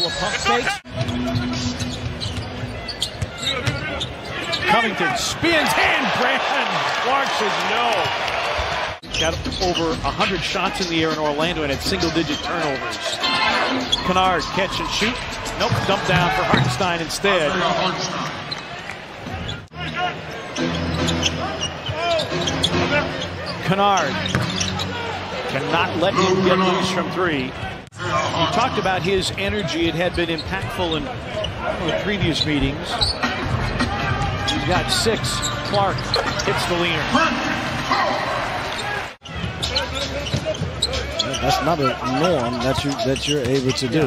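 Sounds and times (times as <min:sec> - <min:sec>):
sneakers squeaking: 0:00.0 - 0:07.0, 0:08.0 - 0:25.4, 0:29.0 - 0:37.3, 0:37.9 - 0:44.0
arena crowd noise: 0:00.0 - 0:44.0
basketball bouncing: 0:24.2 - 0:24.7.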